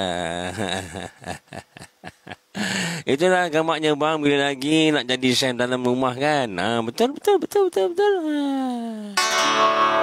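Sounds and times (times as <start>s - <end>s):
man laughing: 0.0s - 3.1s, 7.8s - 9.2s.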